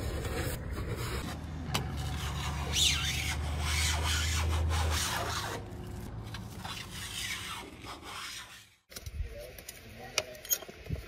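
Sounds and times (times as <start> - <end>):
blade scraping paint off glass: 0.0 - 8.9.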